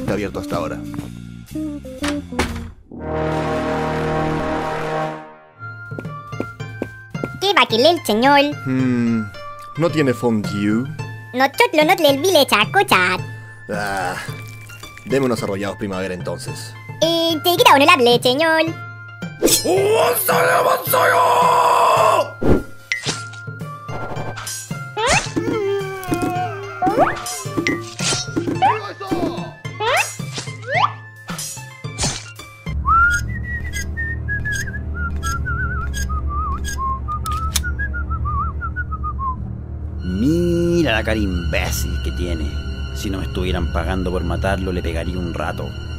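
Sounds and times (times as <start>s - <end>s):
background music: 0.0s - 45.9s
person whistling a tune: 32.8s - 39.4s.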